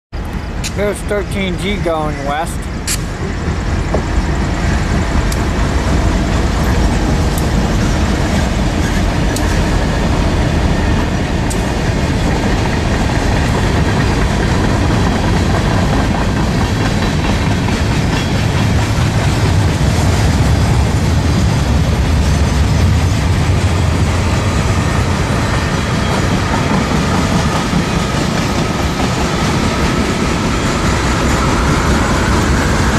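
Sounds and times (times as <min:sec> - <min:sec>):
diesel locomotives passing: 0:00.2 - 0:32.9
freight cars rumbling on rails: 0:00.2 - 0:32.9.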